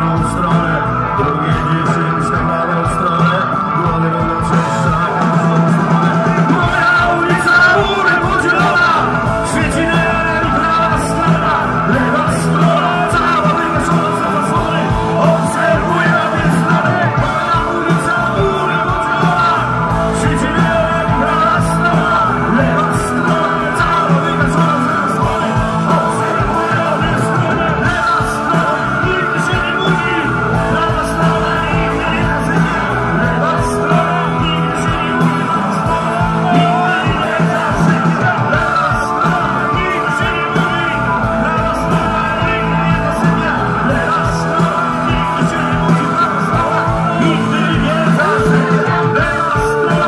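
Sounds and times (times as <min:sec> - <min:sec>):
bass guitar: 0:00.0 - 0:50.0
drums: 0:00.0 - 0:50.0
electric guitars: 0:00.0 - 0:50.0
man singing: 0:00.0 - 0:50.0.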